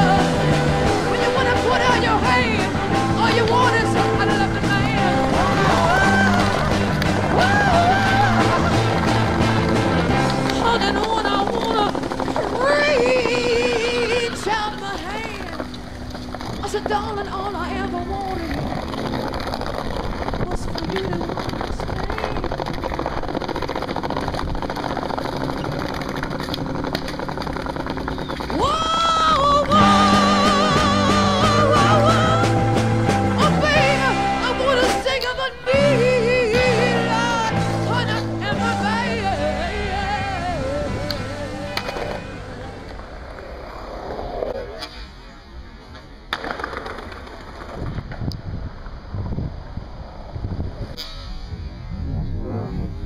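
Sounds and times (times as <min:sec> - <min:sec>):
skateboard wheels rolling on tiles: 0:00.0 - 0:51.0
skateboard landing clack: 0:45.9 - 0:48.3.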